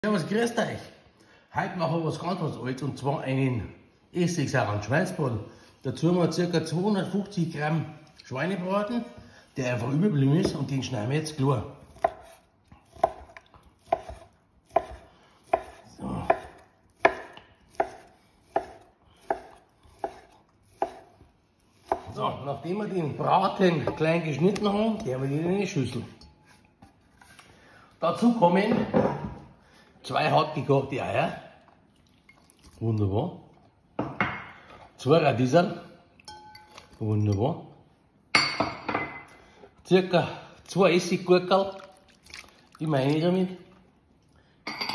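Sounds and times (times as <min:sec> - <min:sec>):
knife chopping on wooden board: 0:11.9 - 0:21.2, 0:21.8 - 0:22.2
ceramic bowl clinking: 0:26.0 - 0:26.9, 0:36.2 - 0:37.5, 0:38.3 - 0:39.4, 0:44.6 - 0:44.9.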